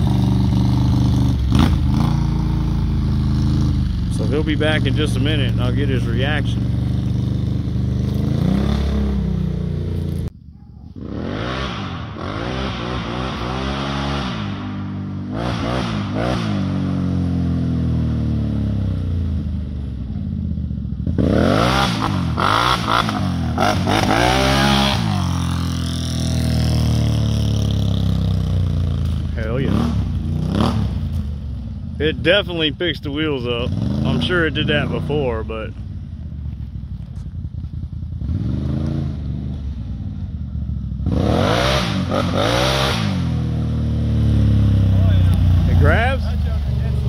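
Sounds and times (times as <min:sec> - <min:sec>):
atv engine revving: 0:00.0 - 0:47.0.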